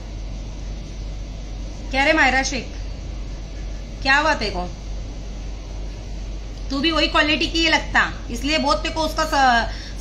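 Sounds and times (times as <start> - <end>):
air conditioner humming: 0.0 - 10.0.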